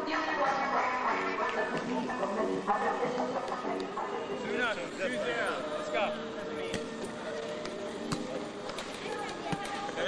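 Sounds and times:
murmur of players' voices: 0.1 - 10.0
volleyball being hit: 6.6 - 10.0.

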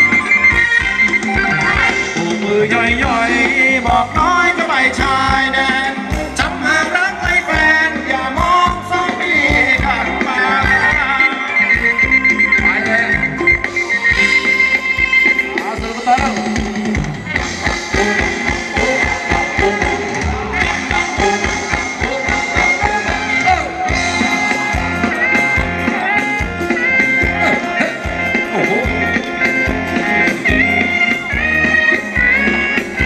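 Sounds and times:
dance band music over speakers: 0.0 - 33.0
steady drum beat: 0.0 - 33.0.

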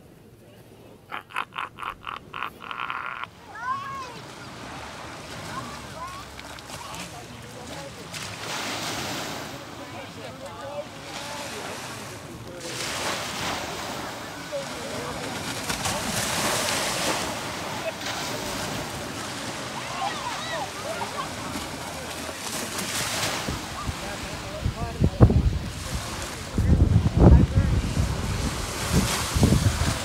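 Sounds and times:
faint distant voices: 0.0 - 30.0
sea waves washing onto shore: 1.0 - 30.0.

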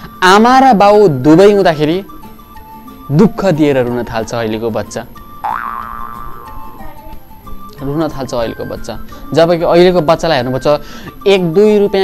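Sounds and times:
quiet background music: 0.0 - 12.0
cartoon boing sound effect: 5.4 - 7.0.

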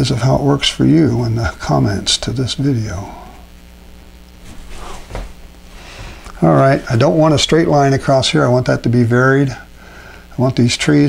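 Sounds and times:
low room hum: 0.0 - 11.0
brush strokes on paper: 4.4 - 6.0.

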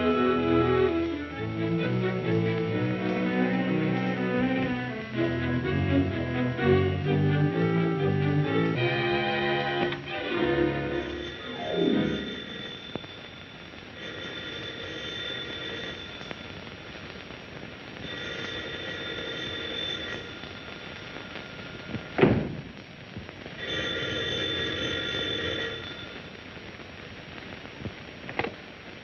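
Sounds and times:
telephone bell ringing: 10.1 - 16.5, 18.1 - 20.8, 23.6 - 26.3
sharp thump: 22.2 - 22.7.

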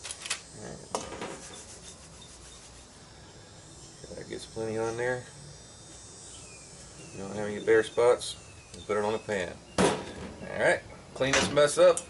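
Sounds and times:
flour rubbing against steel bowl: 1.1 - 5.2.

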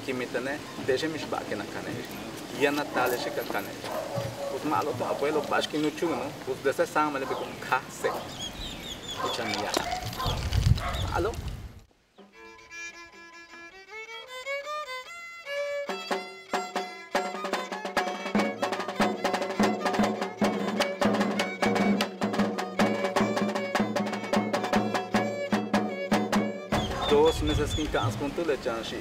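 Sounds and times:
violin playing folk melody: 12.2 - 28.0
sharp rhythmic bow strokes: 12.2 - 28.1.

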